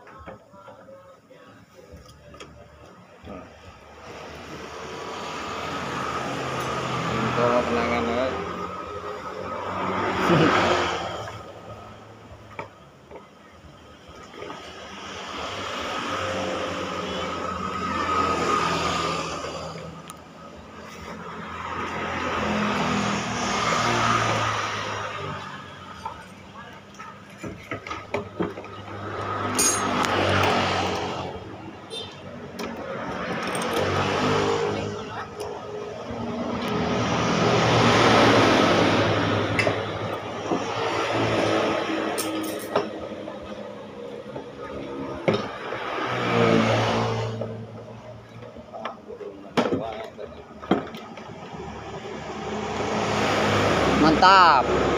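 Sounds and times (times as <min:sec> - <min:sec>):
motor vehicles passing: 0:02.6 - 0:54.9.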